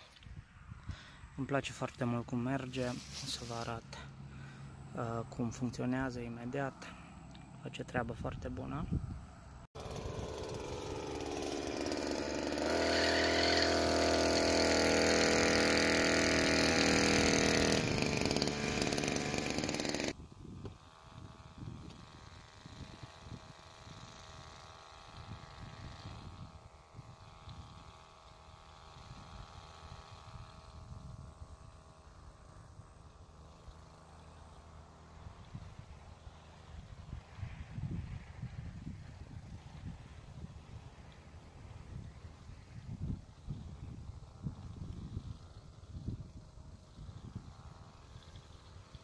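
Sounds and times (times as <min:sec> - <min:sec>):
small two-stroke engine buzzing: 0:00.0 - 0:49.0
wind noise on microphone: 0:08.4 - 0:11.5, 0:20.1 - 0:28.0, 0:28.8 - 0:33.1, 0:35.2 - 0:49.0.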